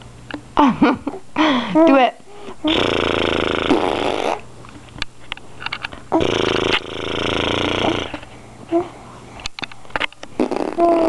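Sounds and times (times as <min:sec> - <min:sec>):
baby raspy buzzing noise: 0:02.6 - 0:04.5, 0:06.1 - 0:08.2, 0:10.4 - 0:11.0.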